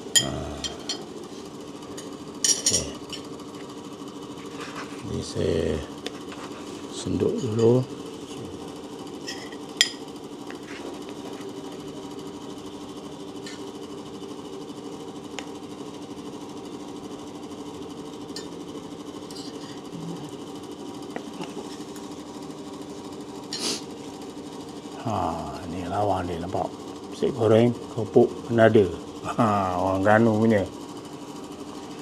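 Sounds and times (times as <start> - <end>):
steady mechanical hum: 0.0 - 32.0.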